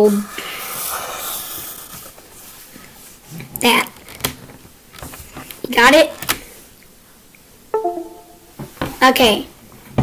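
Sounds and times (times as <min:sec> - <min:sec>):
computer disconnect chime: 0:07.8 - 0:08.6.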